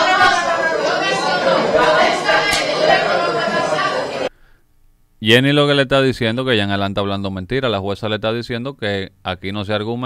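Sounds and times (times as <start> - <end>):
voices talking over one another: 0.0 - 4.3.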